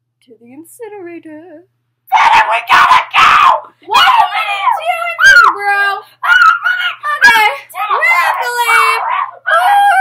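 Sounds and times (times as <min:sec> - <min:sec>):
child screaming: 0:02.1 - 0:05.6, 0:06.2 - 0:10.0.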